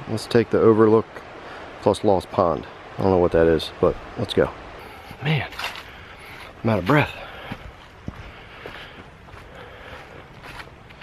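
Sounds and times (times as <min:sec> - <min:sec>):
heavy breathing: 0:04.8 - 0:10.6.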